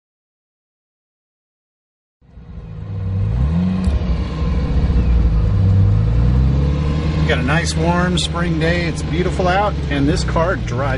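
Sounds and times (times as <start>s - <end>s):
car engine accelerating: 2.2s - 10.9s.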